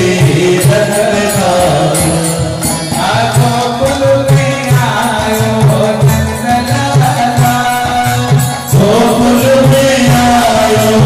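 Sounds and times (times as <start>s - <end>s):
drum: 0.0s - 11.0s
hand cymbals: 0.0s - 11.0s.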